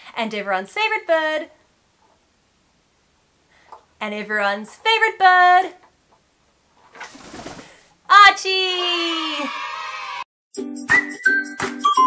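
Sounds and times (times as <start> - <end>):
parrot wings fluttering: 6.8 - 7.9.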